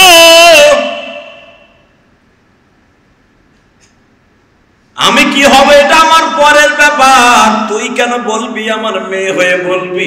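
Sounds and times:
man chanting with echo: 0.0s - 1.8s, 5.0s - 10.0s.

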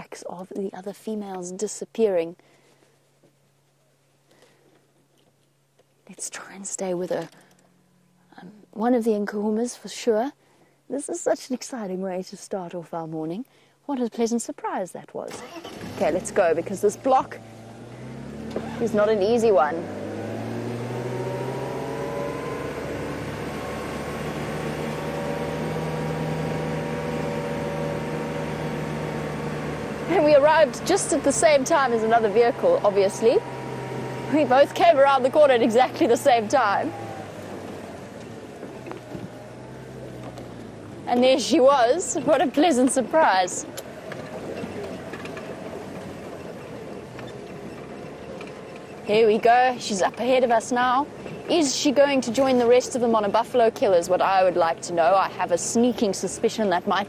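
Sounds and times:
vehicle engine running: 15.4s - 57.0s.

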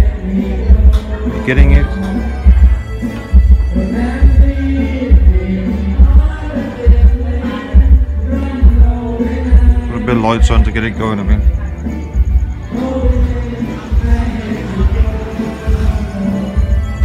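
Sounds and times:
loud karaoke music: 0.0s - 17.0s.

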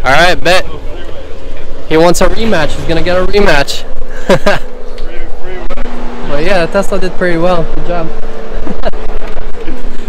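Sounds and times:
low hum: 0.0s - 10.0s
men talking: 0.0s - 10.0s
men laughing: 3.9s - 5.4s, 8.3s - 10.0s.

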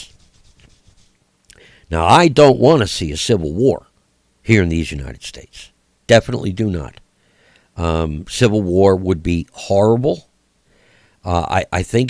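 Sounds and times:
man breathing: 1.5s - 1.9s, 7.2s - 7.8s, 10.6s - 11.2s
man speaking: 1.9s - 3.9s, 4.5s - 7.0s, 7.8s - 10.3s, 11.2s - 12.0s.

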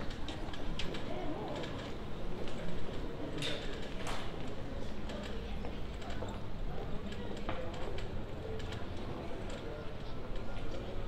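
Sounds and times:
murmur of passers-by talking: 0.0s - 11.0s.

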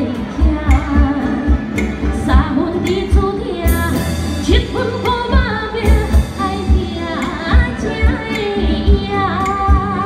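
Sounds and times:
flute lute and drum ensemble: 0.0s - 10.0s
woman singing with vibrato: 0.0s - 10.0s.

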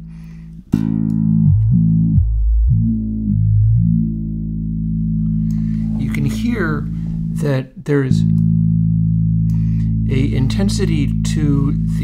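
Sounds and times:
electric bass note sustaining: 0.0s - 12.0s.

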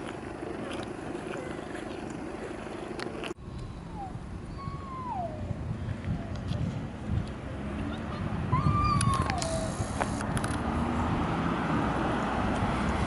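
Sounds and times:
low outdoor murmur: 0.0s - 11.1s
falling whistle-like calls: 3.8s - 5.5s.

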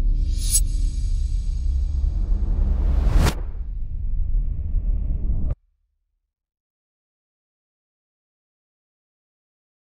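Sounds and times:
deep low rumble: 0.0s - 5.6s.

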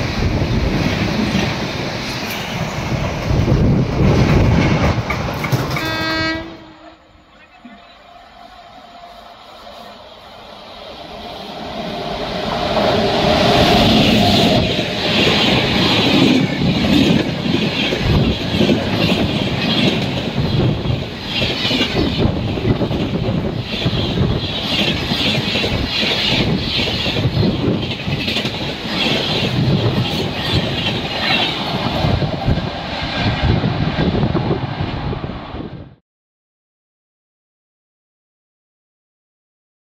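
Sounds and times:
train passing: 0.0s - 36.0s
wheels clacking over rail joints: 0.8s - 6.4s.

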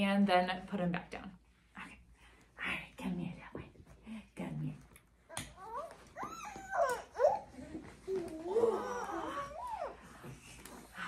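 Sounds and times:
infant whimpering cries: 5.6s - 10.3s.

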